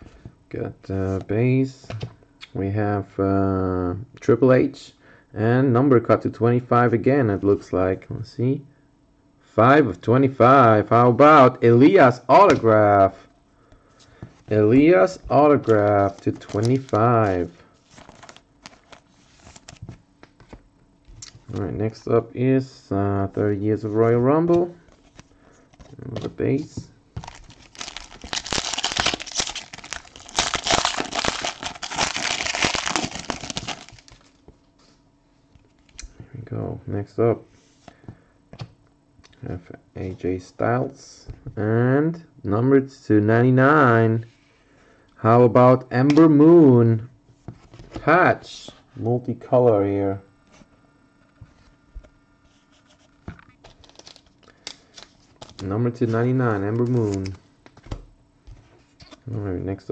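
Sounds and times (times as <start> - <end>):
trading card clicks and rustles: 15.1 - 21.6, 27.2 - 34.4, 52.9 - 55.7
foil wrapper crinkling: 15.6 - 19.8, 27.2 - 34.4, 53.6 - 55.6.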